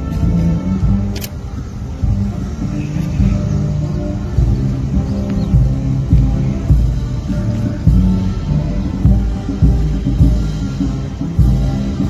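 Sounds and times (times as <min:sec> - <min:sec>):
band playing an anthem: 0:00.0 - 0:12.0.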